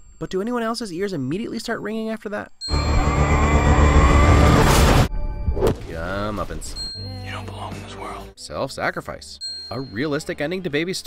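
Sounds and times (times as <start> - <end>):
high-pitched ringing tone: 2.6 - 4.4.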